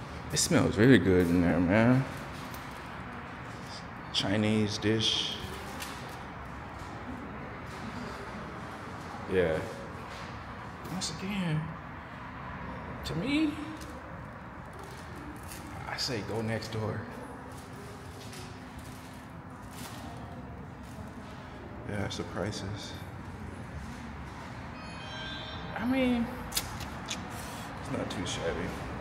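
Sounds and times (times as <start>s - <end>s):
hotel lobby background noise: 0.0s - 29.0s
man talking: 0.3s - 2.1s, 3.7s - 5.4s, 21.9s - 23.0s, 27.8s - 28.9s
faint tone: 24.7s - 26.4s.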